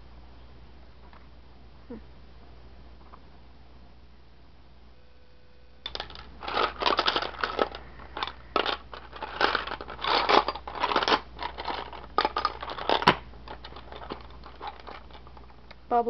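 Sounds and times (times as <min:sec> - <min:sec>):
seashells clattering and scraping: 0:05.9 - 0:15.6.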